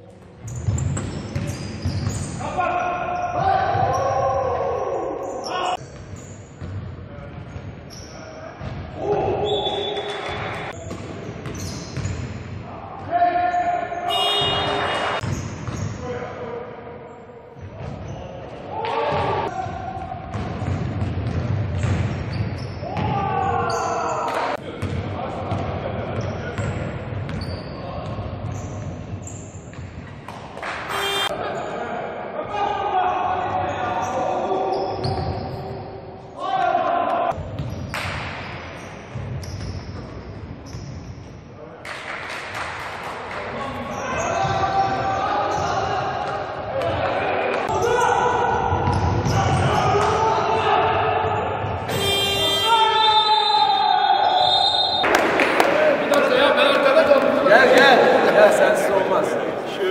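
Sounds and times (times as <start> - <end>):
players shouting: 18.7 - 20.2, 22.8 - 24.6, 43.9 - 59.9.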